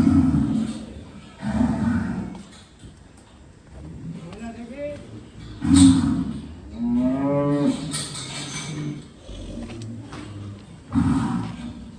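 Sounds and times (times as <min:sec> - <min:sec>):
bull mooing: 0:05.6 - 0:11.9.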